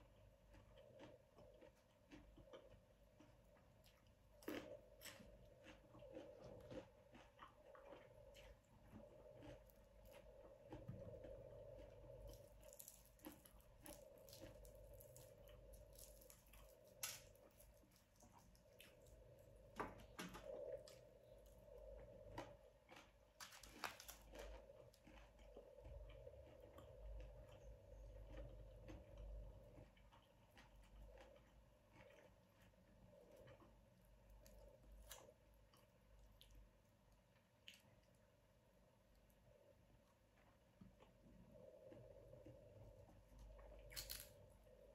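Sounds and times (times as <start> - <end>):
person chewing: 0.0 - 38.2, 40.0 - 44.9
faint steady hum: 0.0 - 44.9.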